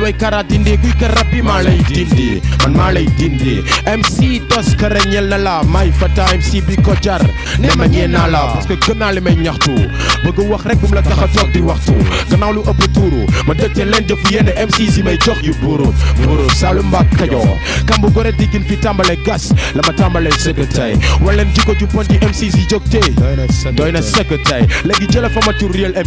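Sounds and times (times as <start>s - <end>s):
deep bass notes: 0.0s - 26.0s
rapping over a beat: 0.0s - 26.0s.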